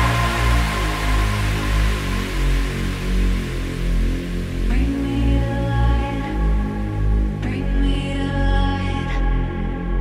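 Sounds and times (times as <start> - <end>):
deep pulsing bass notes: 0.0 - 10.0.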